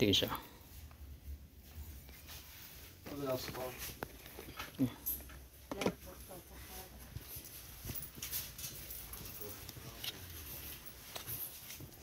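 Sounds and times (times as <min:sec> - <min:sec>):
rustling: 0:01.6 - 0:05.2, 0:06.0 - 0:12.0.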